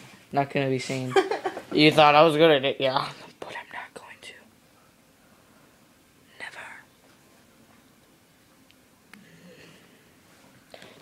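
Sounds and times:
boy whispering: 3.3s - 4.5s, 6.4s - 6.9s.

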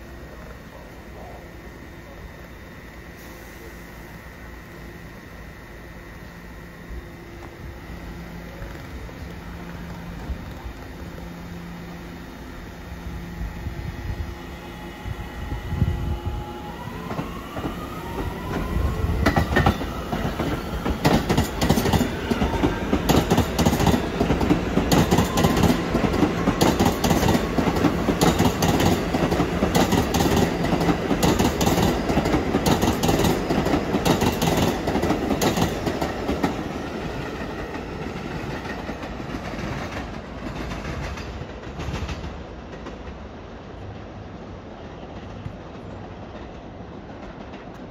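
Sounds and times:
train motor whine: 0.1s - 36.7s
train wheels clattering on track: 16.8s - 47.9s.

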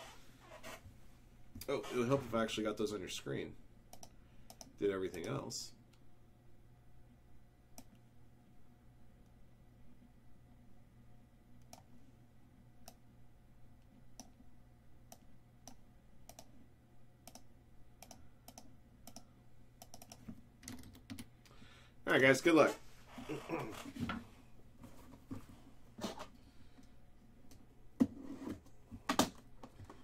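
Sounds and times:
low steady hum: 0.0s - 30.0s
computer clicks: 3.9s - 5.4s, 15.1s - 16.5s, 17.2s - 21.3s.

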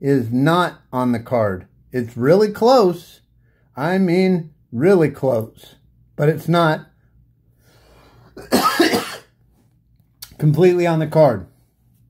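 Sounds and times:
man coughing: 8.3s - 9.4s.

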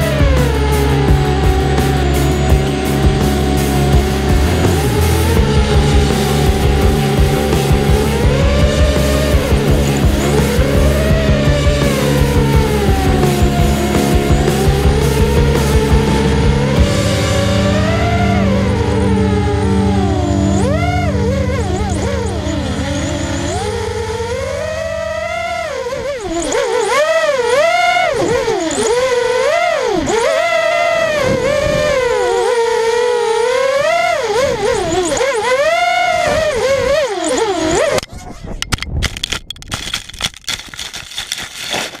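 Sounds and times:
quadcopter motors whining: 0.0s - 42.0s
crackling and rustle on microphone: 37.3s - 42.0s.

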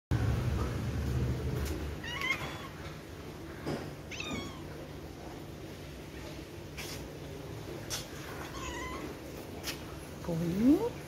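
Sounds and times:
cat meowing: 2.0s - 2.8s, 4.1s - 4.8s, 8.4s - 9.2s.

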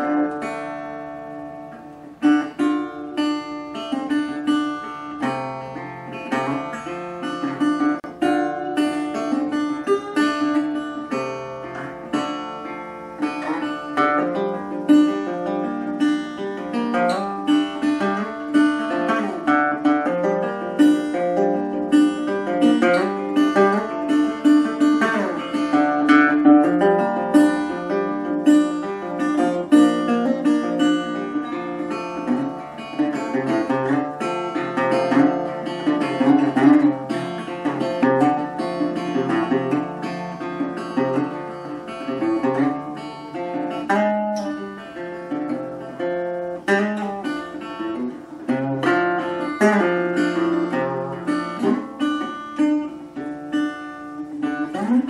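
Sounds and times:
acoustic guitar picking and strumming: 0.0s - 55.0s.

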